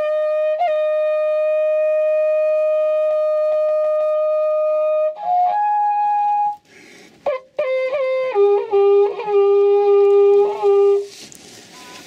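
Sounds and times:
wind instrument holding long note: 0.0s - 11.3s.

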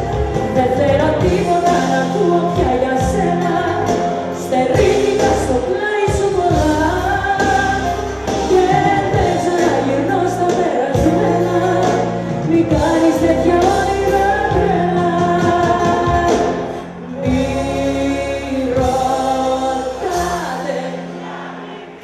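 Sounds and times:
band with a steady beat: 0.0s - 21.2s
woman singing into a microphone: 0.0s - 22.0s.

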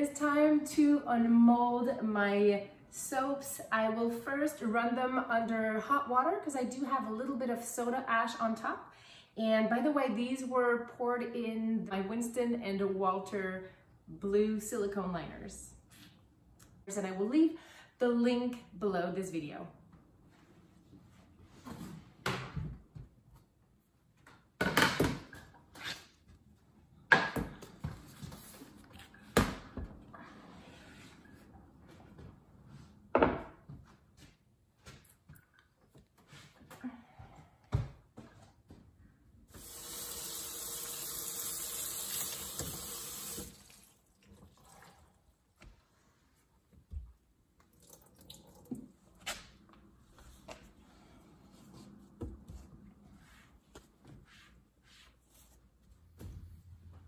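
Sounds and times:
faucet sprayer spraying water: 39.6s - 43.8s.

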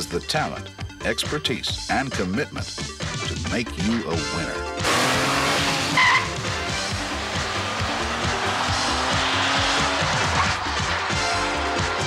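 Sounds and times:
music: 0.0s - 12.0s
sports car engine accelerating: 4.8s - 12.0s
tyre squeal: 5.8s - 6.5s.

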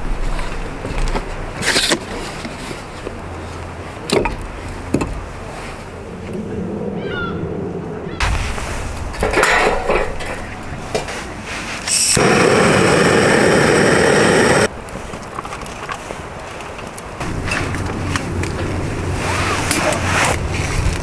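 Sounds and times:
loud rushing hiss: 11.8s - 14.7s.

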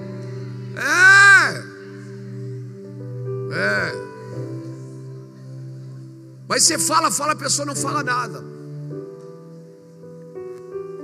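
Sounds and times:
soft background music chord: 0.0s - 11.0s.

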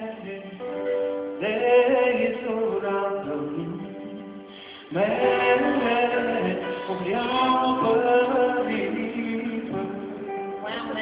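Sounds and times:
live amplified music with singing: 0.0s - 11.0s.

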